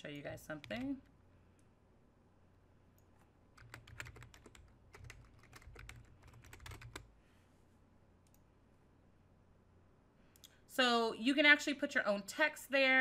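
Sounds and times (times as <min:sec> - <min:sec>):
typing on a keyboard: 0:00.6 - 0:01.0, 0:03.6 - 0:07.1.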